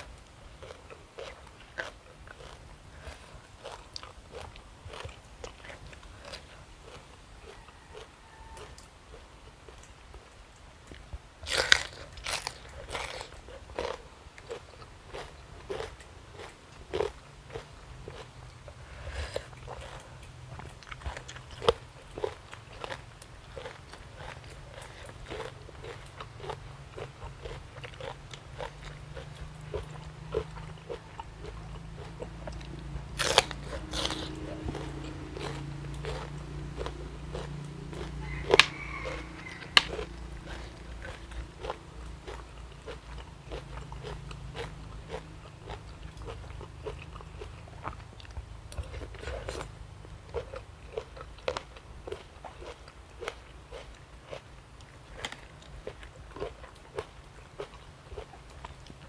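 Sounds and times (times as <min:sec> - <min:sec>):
chewing crunchy food: 0:00.0 - 0:59.0.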